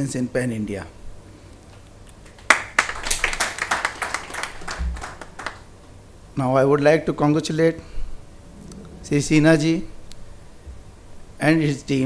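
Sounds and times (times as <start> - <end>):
small audience clapping: 2.1 - 5.7.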